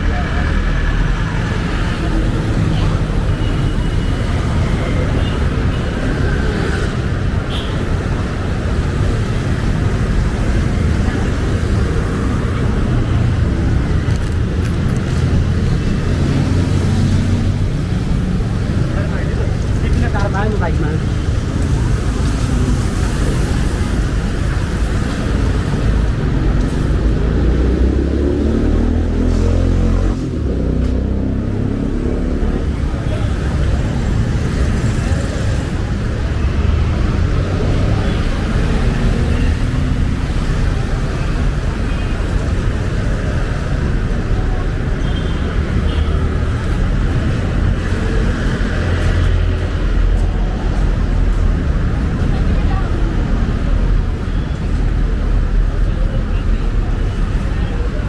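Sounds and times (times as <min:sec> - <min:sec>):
cars and scooters passing: 0:00.0 - 0:58.0
passers-by talking: 0:00.0 - 0:58.0.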